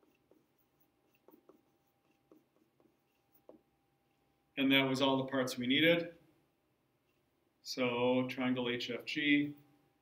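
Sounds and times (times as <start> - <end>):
stylus tapping on a tablet: 0.0 - 3.7.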